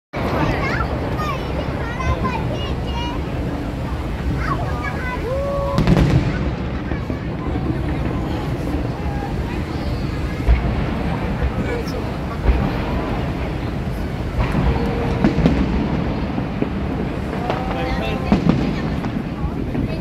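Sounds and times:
fireworks booming and crackling: 0:00.2 - 0:20.0
sharp firework bangs: 0:00.2 - 0:20.0.

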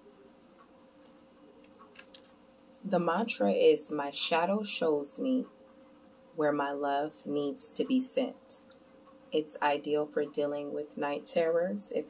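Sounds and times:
faint steady hum: 0:00.0 - 0:12.0
woman's voice: 0:02.9 - 0:05.5, 0:06.4 - 0:08.6, 0:09.4 - 0:12.0.

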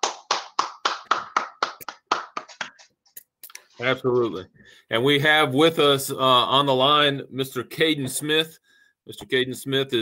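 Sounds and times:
hands clapping: 0:00.0 - 0:03.6.

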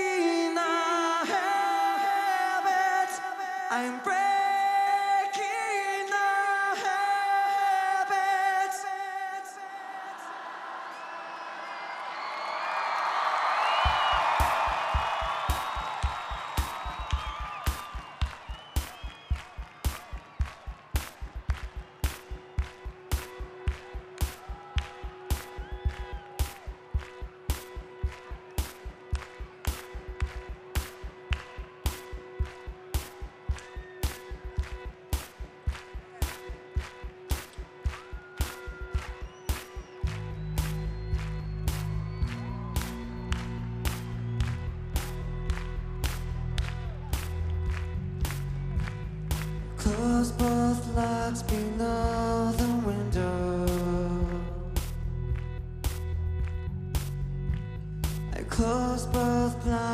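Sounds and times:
crowd cheering: 0:04.9 - 0:59.9
sharp clap-like hit: 0:14.0 - 0:42.0.

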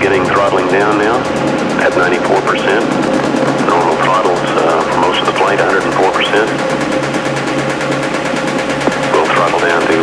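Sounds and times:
electronic drone: 0:00.0 - 0:10.0
sweeping voice-like synth sounds: 0:00.0 - 0:10.0.

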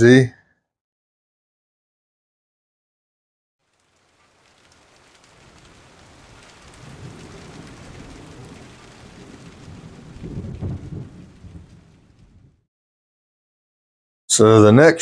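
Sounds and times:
water splashing and dripping: 0:03.6 - 0:12.3
crackly patter: 0:03.6 - 0:12.4.

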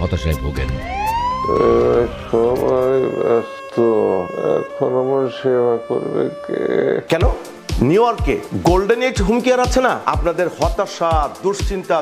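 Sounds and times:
ambulance siren wavering: 0:00.7 - 0:07.5.

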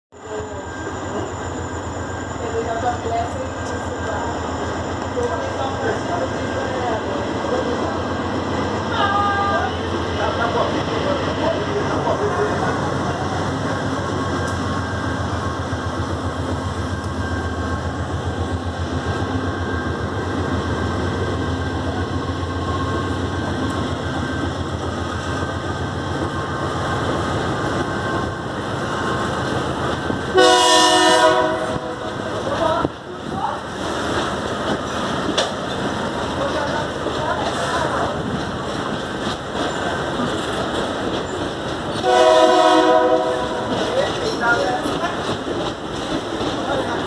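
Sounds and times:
locomotive engine pulsing: 0:00.2 - 0:47.0
train horn blast: 0:30.3 - 0:32.2, 0:42.0 - 0:43.8.

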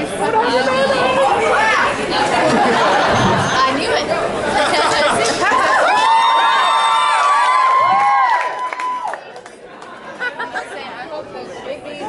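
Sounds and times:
crowd voices talking and calling out: 0:00.0 - 0:08.3, 0:09.0 - 0:12.0.

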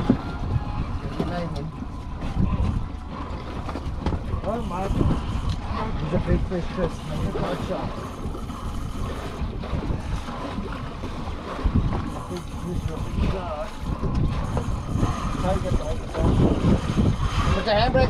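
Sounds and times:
water washing against boat hull: 0:00.0 - 0:18.0
wind buffeting microphone: 0:00.0 - 0:18.0.

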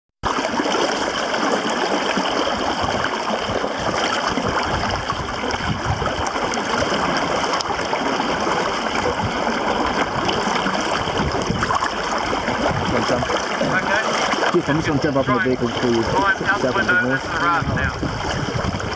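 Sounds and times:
steady rush of water: 0:00.2 - 0:18.9
water sloshing and trickling: 0:00.2 - 0:18.9.

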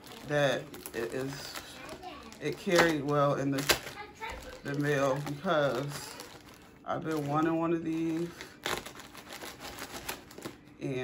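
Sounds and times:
plastic packaging crinkling: 0:00.0 - 0:11.0.

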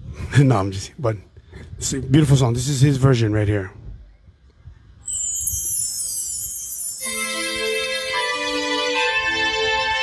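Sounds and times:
high shimmering falling sweep: 0:05.0 - 0:08.9
song intro over pa: 0:06.8 - 0:10.0.

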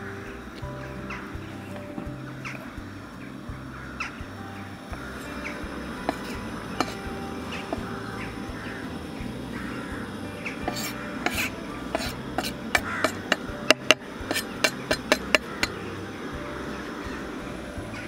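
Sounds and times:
knife scraping wooden board: 0:10.7 - 0:15.7
sharp taps against pan: 0:10.7 - 0:15.8.

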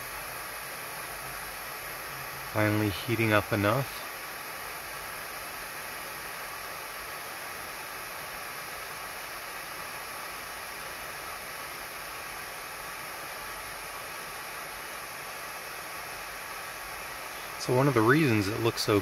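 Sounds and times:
gas burner flame hissing: 0:00.0 - 0:19.0.

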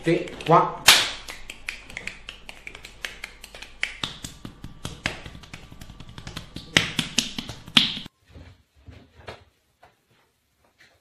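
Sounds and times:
hands slapping a back: 0:00.2 - 0:08.1.

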